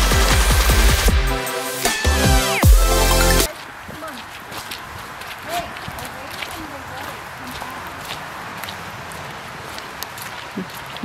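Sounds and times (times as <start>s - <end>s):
footsteps on dirt trail: 3.4s - 11.0s.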